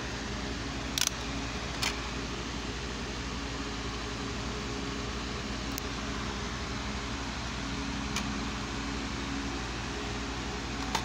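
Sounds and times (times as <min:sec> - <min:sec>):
background hum and hiss: 0:00.0 - 0:11.0
sharp click of disc case: 0:10.8 - 0:11.0.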